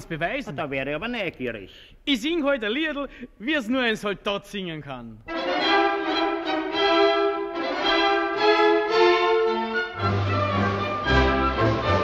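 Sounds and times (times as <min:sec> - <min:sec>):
orchestra playing strings melody: 0:05.3 - 0:12.0.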